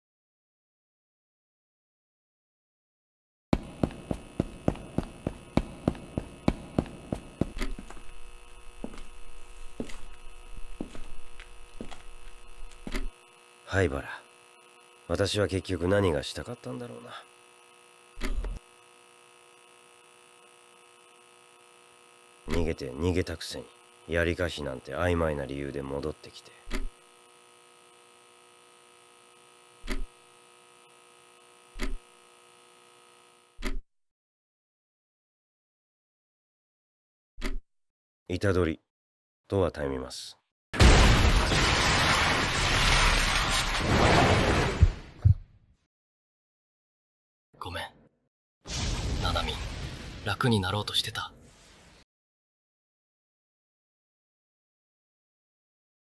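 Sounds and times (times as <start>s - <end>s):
quick footsteps: 3.6s - 8.2s, 8.8s - 13.1s
steady electrical hum: 3.6s - 33.6s.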